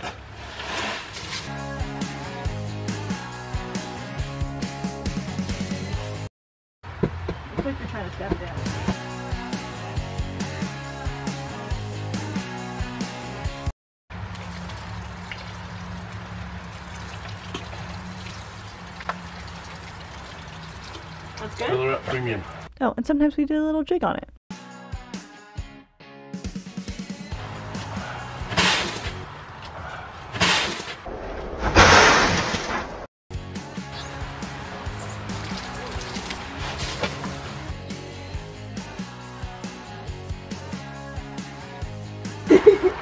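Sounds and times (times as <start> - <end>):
stones sliding from a wheelbarrow: 0.0 - 1.5, 27.8 - 29.2, 30.4 - 33.1, 35.1 - 37.6
guitar music: 33.4 - 39.4.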